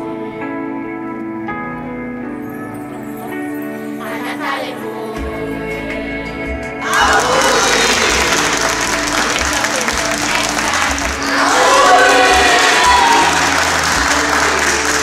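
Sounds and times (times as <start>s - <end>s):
christmas music: 0.0s - 15.0s
people clapping and cheering: 6.8s - 15.0s
voices calling out: 6.8s - 15.0s.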